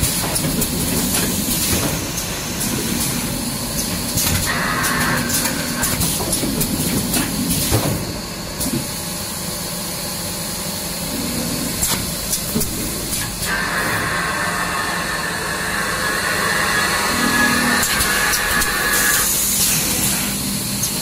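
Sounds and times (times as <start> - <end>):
packing machine running: 11.1 - 21.0.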